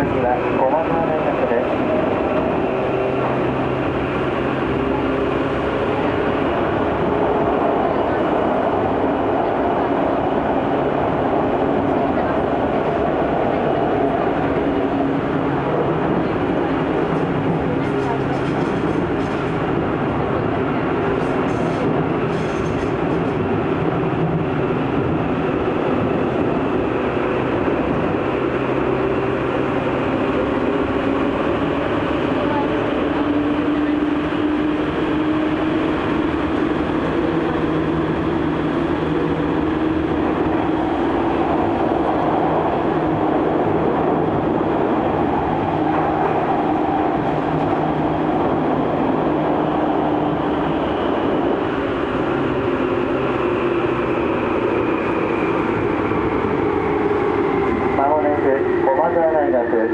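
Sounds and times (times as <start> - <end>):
low train whine: 0.0 - 59.9
train wheels rumbling: 0.0 - 59.9.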